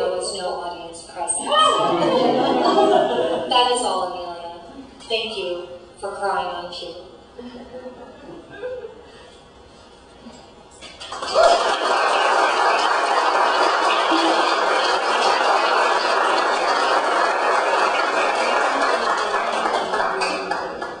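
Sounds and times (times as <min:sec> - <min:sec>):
audience applauding: 0:11.0 - 0:21.0.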